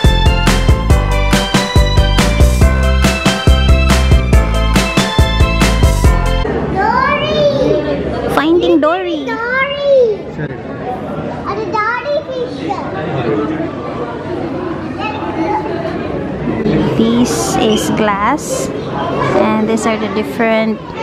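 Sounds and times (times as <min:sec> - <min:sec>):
murmur of voices: 0:06.4 - 0:21.0.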